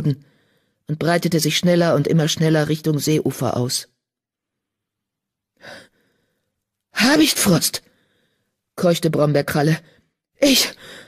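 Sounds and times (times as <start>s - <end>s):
short breath: 0.2s - 0.8s, 7.9s - 8.6s, 10.8s - 11.0s.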